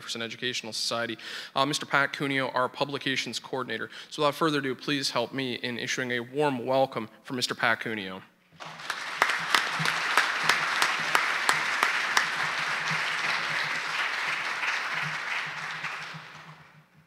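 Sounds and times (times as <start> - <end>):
audience applauding: 8.6 - 16.8.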